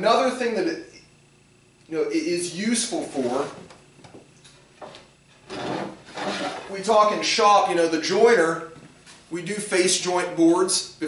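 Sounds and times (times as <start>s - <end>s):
wooden board scraping: 4.8s - 7.4s.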